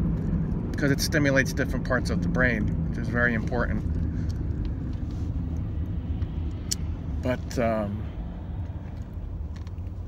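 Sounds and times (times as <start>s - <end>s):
car engine rumble: 0.0s - 10.0s
road noise: 0.0s - 10.0s.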